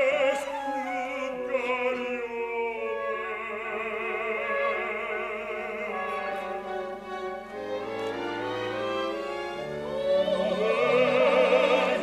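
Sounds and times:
orchestra with violins: 0:03.0 - 0:12.0.

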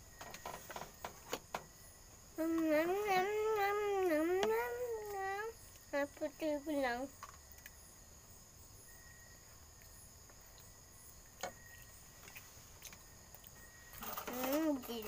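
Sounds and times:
crickets droning: 0:00.0 - 0:15.0
child's voice: 0:02.4 - 0:07.1, 0:14.1 - 0:15.0.

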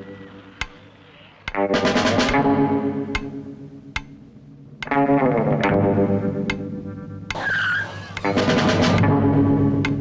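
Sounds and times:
short skidding squeal: 0:07.4 - 0:08.3.

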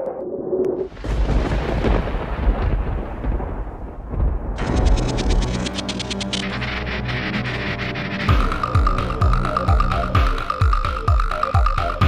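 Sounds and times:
deep thunder-like rumble: 0:00.9 - 0:06.6.

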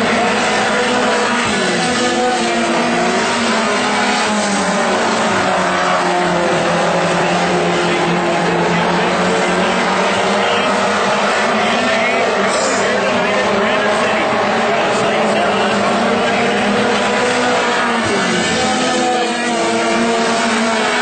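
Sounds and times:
race car engines running hard: 0:00.0 - 0:21.0
track noise: 0:00.0 - 0:21.0.

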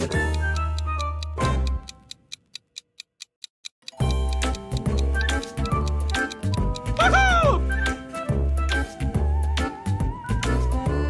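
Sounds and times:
countdown timer ticking: 0:00.0 - 0:11.0.

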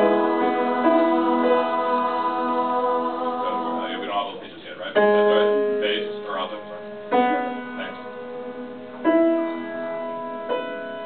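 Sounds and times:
piano chord ringing: 0:00.0 - 0:11.0.

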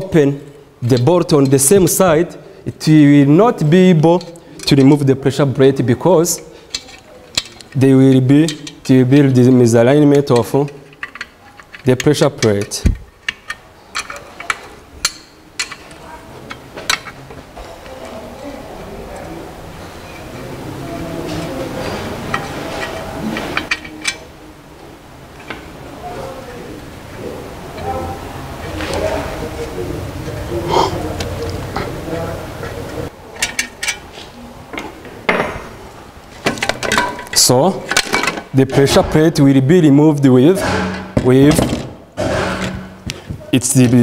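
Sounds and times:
metal parts clinking and knocking: 0:06.7 - 0:09.3, 0:10.2 - 0:18.0, 0:21.8 - 0:24.3, 0:33.4 - 0:34.1, 0:36.4 - 0:39.0
low background murmur: 0:13.0 - 0:38.6.

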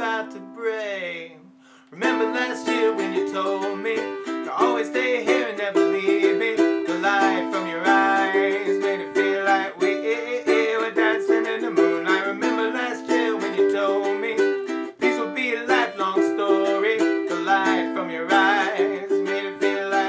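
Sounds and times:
man singing: 0:00.0 - 0:20.0
ukulele strumming: 0:02.0 - 0:20.0.

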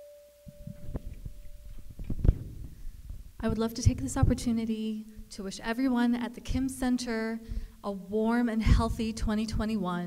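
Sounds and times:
tabla tone ringing: 0:00.0 - 0:02.9
microphone handling knocks: 0:00.5 - 0:04.5.

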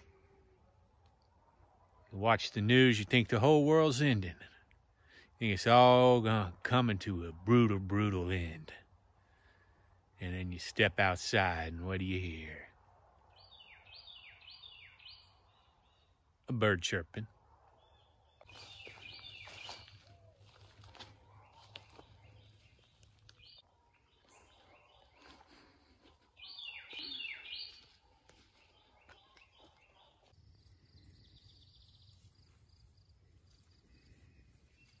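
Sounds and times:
small birds chirping: 0:13.2 - 0:35.0.

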